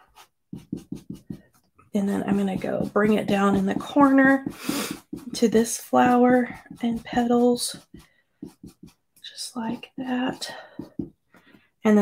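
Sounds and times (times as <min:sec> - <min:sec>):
brush scrubbing through stencil: 0:00.0 - 0:11.6.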